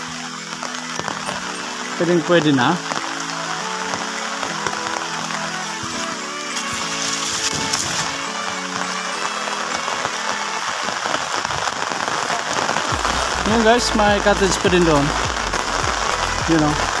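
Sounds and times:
music of sustained notes: 0.0s - 17.0s
rain falling on water and foliage: 0.0s - 17.0s.

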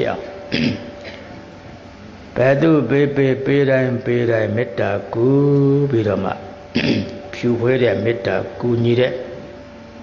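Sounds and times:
man chanting: 2.4s - 9.4s.

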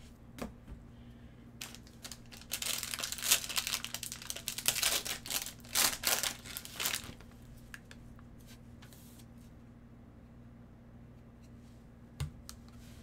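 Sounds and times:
foil wrapper crinkling: 1.6s - 7.9s.

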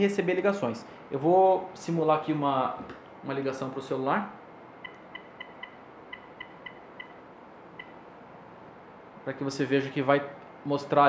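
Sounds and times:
electronic keypad beeps: 4.8s - 7.2s, 7.8s - 8.0s.

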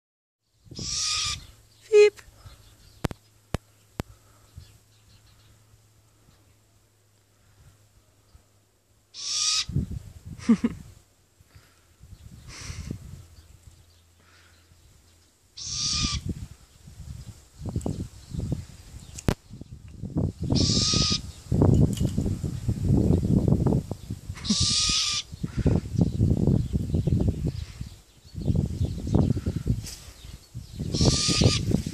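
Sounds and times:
owl hissing screech: 0.8s - 1.5s, 9.1s - 9.7s, 15.6s - 16.3s, 20.5s - 21.2s, 24.4s - 25.3s, 30.9s - 31.7s
owl clear call: 0.8s - 2.2s, 9.1s - 9.8s, 15.6s - 16.3s, 20.5s - 21.3s, 24.4s - 25.7s, 30.9s - 31.7s.

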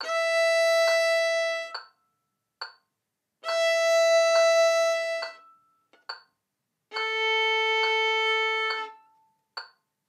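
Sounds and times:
violin bowed note: 0.0s - 1.8s, 3.4s - 5.5s, 6.9s - 9.2s.

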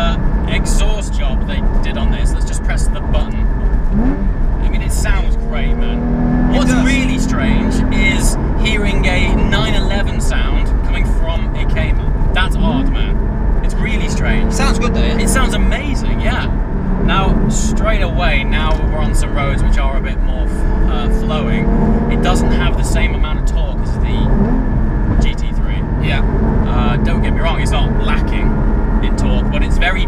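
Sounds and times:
car engine accelerating: 0.0s - 30.0s
low road rumble: 0.0s - 30.0s.

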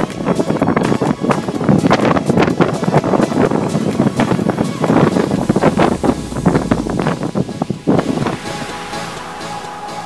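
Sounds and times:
music: 0.0s - 10.0s
wind buffeting microphone: 0.0s - 10.0s.

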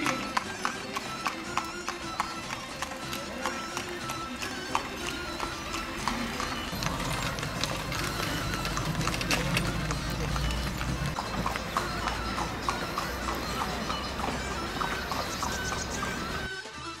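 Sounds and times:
hooves clip-clopping on pavement: 0.0s - 17.0s.

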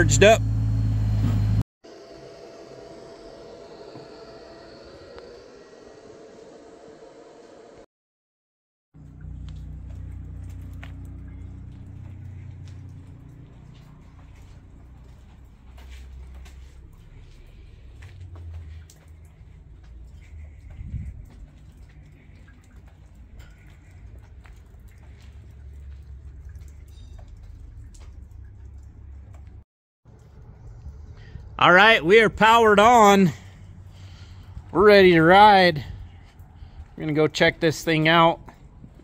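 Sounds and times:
low outdoor rumble: 9.0s - 39.0s.

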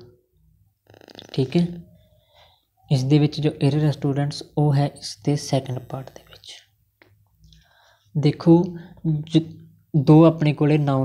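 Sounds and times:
man speaking: 1.2s - 1.9s, 2.9s - 6.7s, 8.1s - 11.0s
soft breathy hiss: 7.4s - 9.0s.

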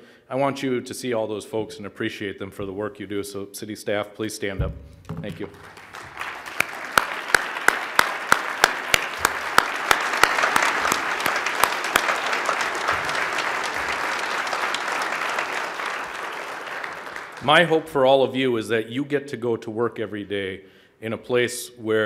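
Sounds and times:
sharp evenly spaced claps: 5.3s - 17.6s
large audience applauding: 5.3s - 17.8s.

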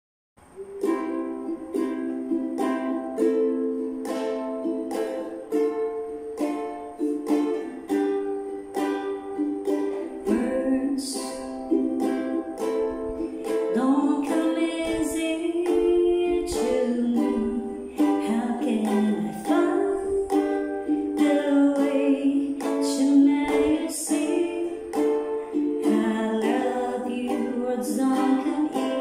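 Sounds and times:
ukulele strumming: 0.4s - 29.0s.

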